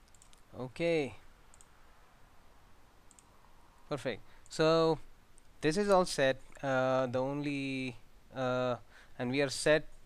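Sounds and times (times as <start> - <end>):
computer mouse click: 0.0 - 0.5, 1.5 - 1.8, 3.0 - 3.3.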